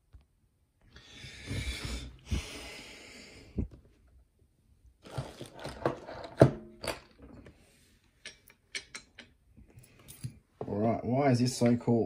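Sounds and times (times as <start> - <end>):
small metal parts clicking: 8.2 - 9.4.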